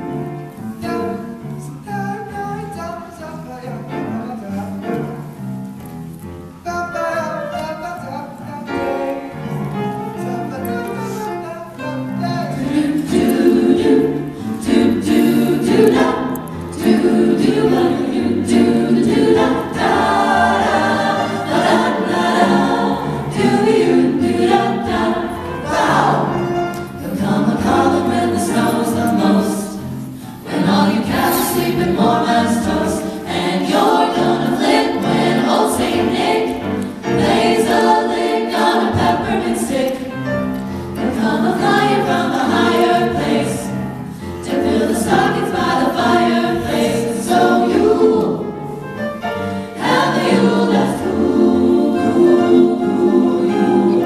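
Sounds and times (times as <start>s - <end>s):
vocal jazz group singing: 6.6s - 54.0s.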